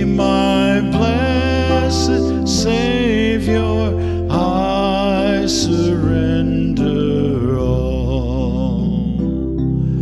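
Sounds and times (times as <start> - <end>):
congregation singing a hymn: 0.0 - 8.8
keyboard accompaniment: 0.0 - 10.0.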